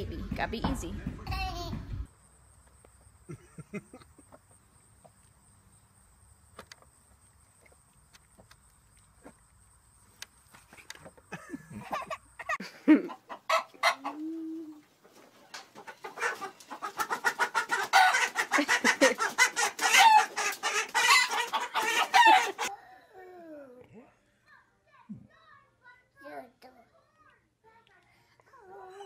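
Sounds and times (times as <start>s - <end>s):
chicken squawking and clucking: 11.7s - 22.7s.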